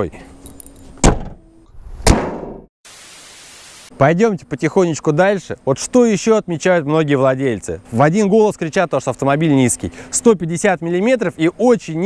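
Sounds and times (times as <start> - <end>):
car hood slamming shut: 1.0 - 1.4.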